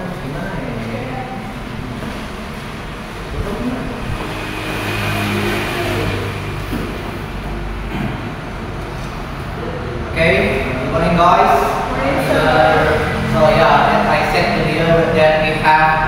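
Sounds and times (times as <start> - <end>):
vehicle engine passing by: 0.0 - 16.0.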